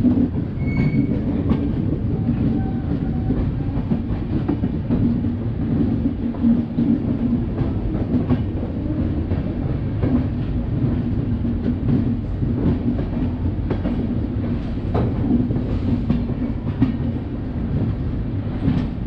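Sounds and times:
train wheels rumbling on rail: 0.0s - 19.0s
clicks at rail joints: 0.3s - 17.2s
faint squeal: 0.6s - 1.1s.

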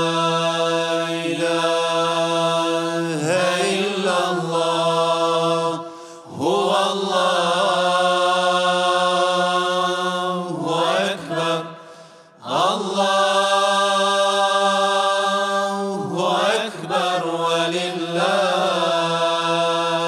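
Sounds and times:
person chanting recitation: 0.0s - 20.0s.

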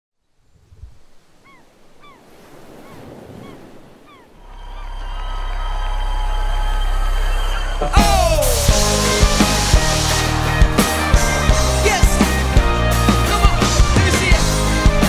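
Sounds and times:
surf washing: 0.5s - 6.3s, 7.0s - 15.0s
gulls crying: 1.3s - 15.0s
low sustained drone: 4.4s - 11.4s.

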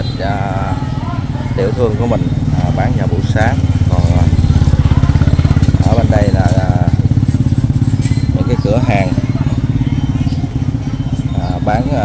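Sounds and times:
small motorbike engine putter: 3.3s - 11.6s.

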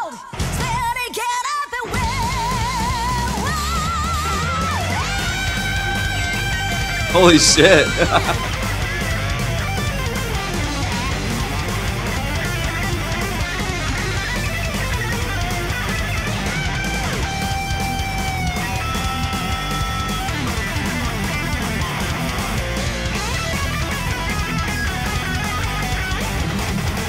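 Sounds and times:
thrash metal band playing: 4.8s - 27.0s
distorted electric guitar solo: 5.8s - 18.1s.

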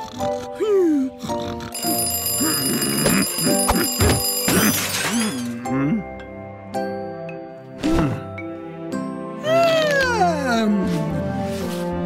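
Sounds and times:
alarm clock bell ringing: 1.7s - 5.6s.

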